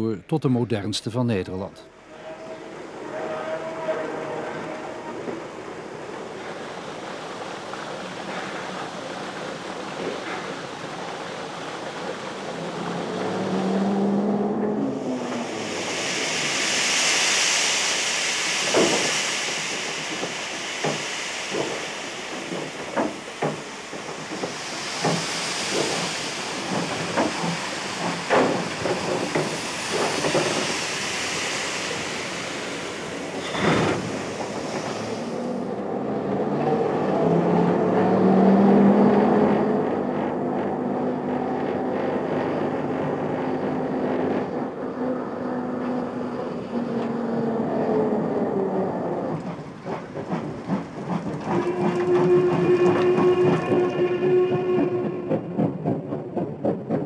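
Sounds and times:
low steam whistle: 2.0s - 5.7s, 51.5s - 55.7s
steam hissing: 2.0s - 39.0s, 39.6s - 57.0s
train wheels beating: 2.2s - 44.8s, 45.7s - 57.0s.

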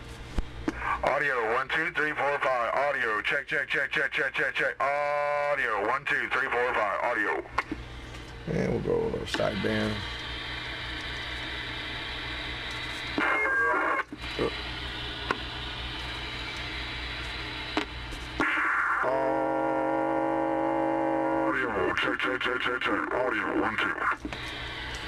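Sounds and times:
radio static hiss: 0.7s - 7.6s, 8.5s - 19.6s, 20.9s - 24.9s
held tone with overtones: 18.4s - 21.5s.

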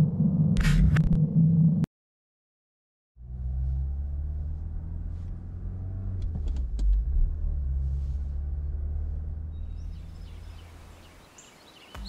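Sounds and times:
deep low rumble: 0.0s - 1.9s, 3.2s - 11.0s.

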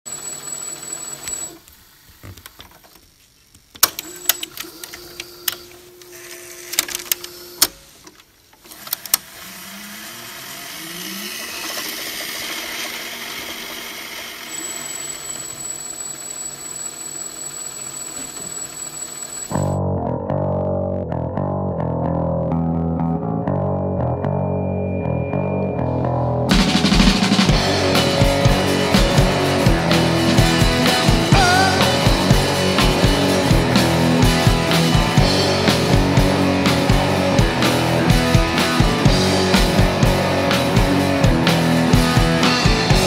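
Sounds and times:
tape hiss: 1.3s - 4.0s
mechanical clicks and clunks: 3.8s - 5.8s
tape rewinding whine: 8.8s - 19.8s
rising pitch glides: 9.4s - 11.8s, 19.5s - 43.0s
bass guitar riff: 19.5s - 43.0s.

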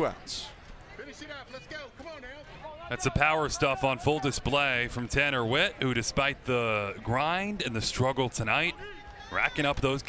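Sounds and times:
broadcast commentary: 0.0s - 10.0s.

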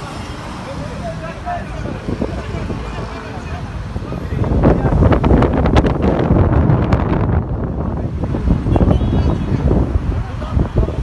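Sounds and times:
gusting wind buffeting microphone: 1.3s - 11.0s.

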